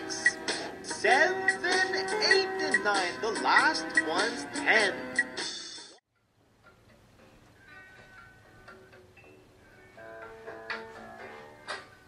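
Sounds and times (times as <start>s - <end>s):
faint music with held notes: 0.0s - 12.0s
music: 0.0s - 12.0s.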